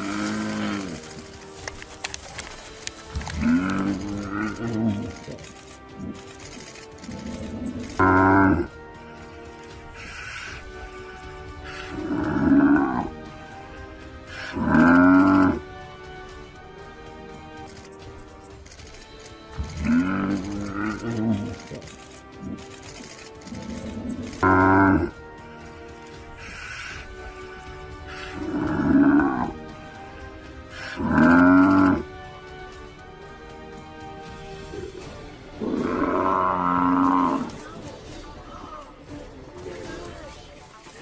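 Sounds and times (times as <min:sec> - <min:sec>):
drawn-out animal calls: 0:00.0 - 0:32.6, 0:34.5 - 0:38.1
background music: 0:00.0 - 0:41.0.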